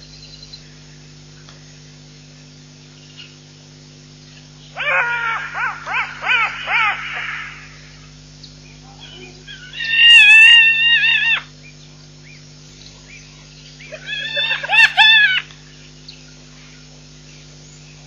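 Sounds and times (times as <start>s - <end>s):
electrical hum: 0.0s - 18.0s
wild animal high calls: 4.7s - 8.1s, 9.0s - 11.5s, 13.8s - 15.5s.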